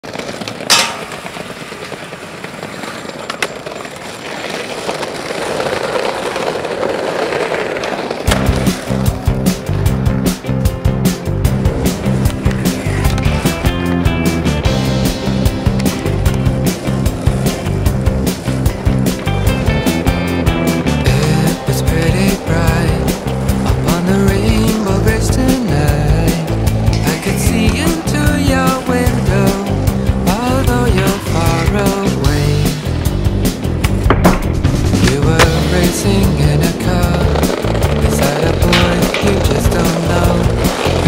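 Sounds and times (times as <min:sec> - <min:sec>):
skateboard clack: 0:00.0 - 0:41.0
skateboard wheels rolling on pavement: 0:00.0 - 0:41.0.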